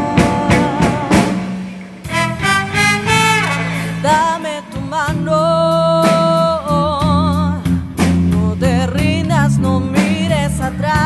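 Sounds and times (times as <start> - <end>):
drum hit: 0.0 - 5.3
held bass note: 0.0 - 7.8
horn section chords: 2.0 - 5.3.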